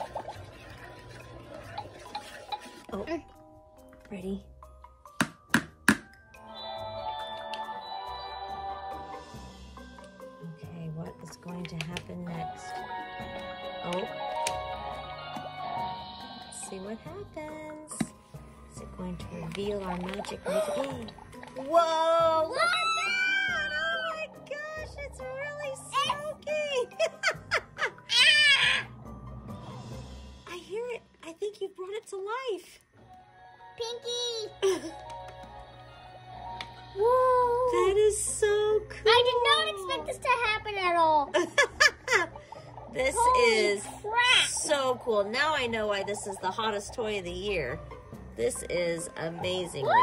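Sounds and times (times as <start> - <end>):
toy cauldron tapping: 5.1 - 6.2
toy playing magical tune: 6.1 - 10.4, 12.3 - 21.8
electronic music of held tones: 6.4 - 9.6.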